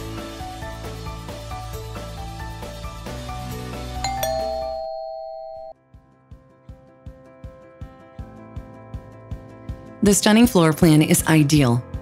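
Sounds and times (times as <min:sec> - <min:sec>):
background music: 0:00.0 - 0:12.0
two-note doorbell chime: 0:04.0 - 0:05.8.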